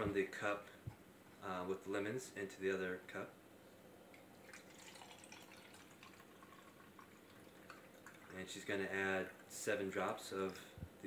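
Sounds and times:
water trickling and dripping: 4.1s - 10.7s.

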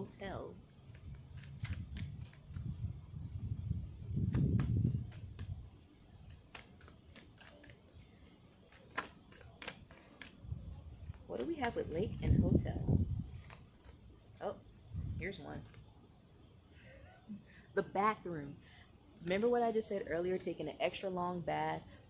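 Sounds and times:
wind rumble on microphone: 0.0s - 5.8s, 10.4s - 13.7s, 14.8s - 15.7s.

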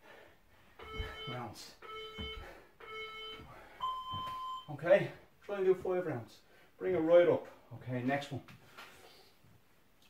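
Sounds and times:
long high timer beep: 0.8s - 4.7s
short low timer beeps: 0.8s - 4.7s.

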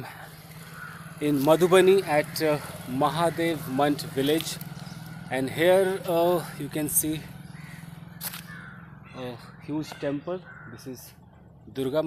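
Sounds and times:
bird calling harshly: 0.0s - 12.0s.

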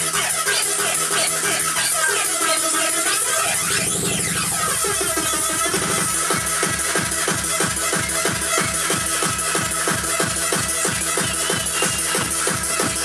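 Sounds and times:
hard electronic dance music: 0.0s - 13.0s
fast steady kick drum: 3.6s - 13.0s.

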